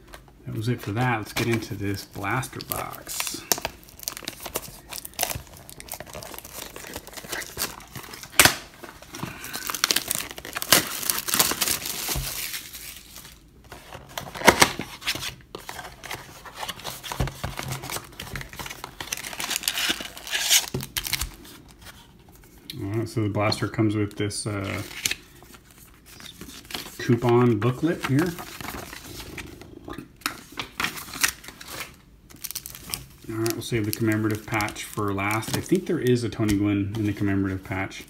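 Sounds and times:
packaging crinkling and rustling: 0.0 - 22.5, 24.6 - 38.0
cardboard tearing: 2.6 - 21.2.

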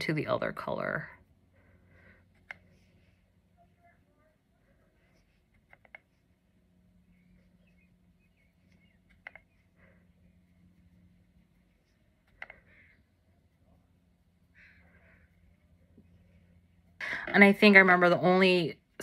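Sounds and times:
faint low hum: 0.0 - 19.0
soft clicks: 2.3 - 2.7, 5.5 - 6.1, 8.7 - 9.7, 12.2 - 12.7.

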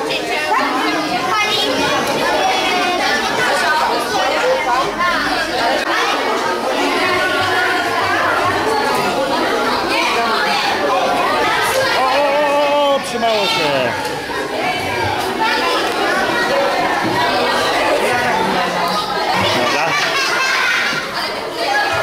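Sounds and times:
children chattering: 0.0 - 22.0.

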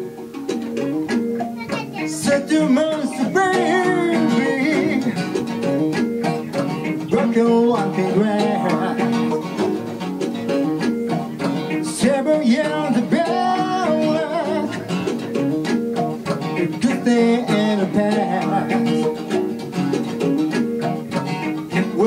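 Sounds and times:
acoustic guitar strumming: 0.0 - 22.0
man singing: 2.0 - 5.4, 7.0 - 9.6, 11.8 - 15.1, 16.7 - 19.5, 21.7 - 22.0.

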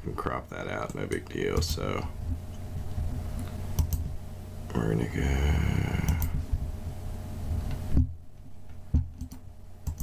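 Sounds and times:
computer mouse clicks: 3.4 - 4.0, 9.2 - 10.0.

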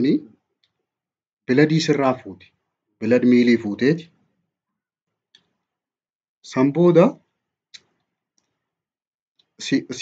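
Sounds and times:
person speaking: 1.5 - 4.3.

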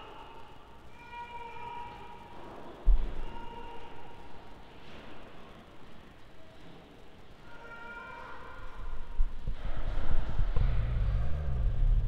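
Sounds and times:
handling noise rumbling and bumping: 9.3 - 12.0.

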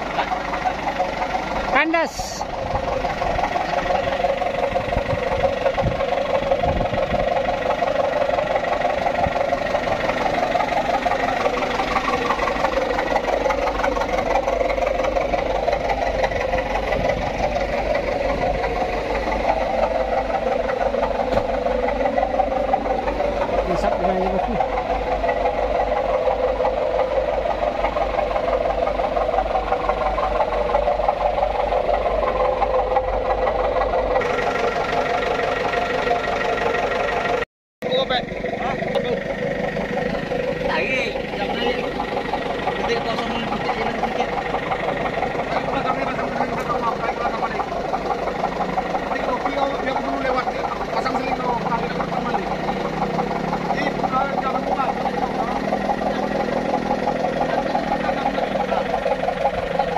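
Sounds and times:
truck engine running: 0.0 - 59.9
people's voices: 1.7 - 2.6, 40.0 - 59.9.

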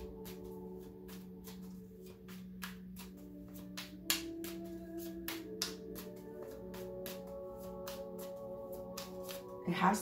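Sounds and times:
cards being shuffled: 0.0 - 9.5
ambient music with held tones: 0.0 - 10.0.

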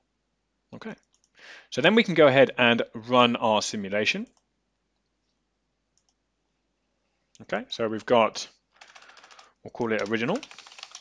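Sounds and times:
computer mouse clicks: 6.0 - 6.2.

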